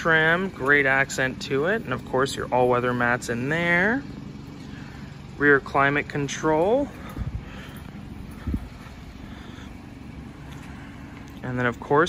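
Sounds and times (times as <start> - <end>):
handheld camera rumble: 0.0 - 12.0.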